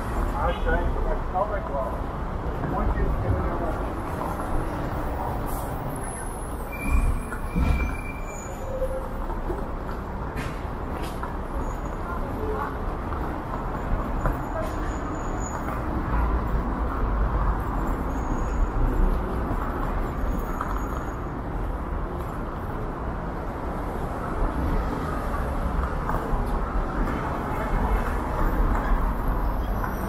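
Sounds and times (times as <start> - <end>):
bus passing: 0.0 - 30.0
road traffic rumble: 0.0 - 30.0
voices of passers-by: 0.0 - 30.0
brief high squeal: 6.6 - 9.2.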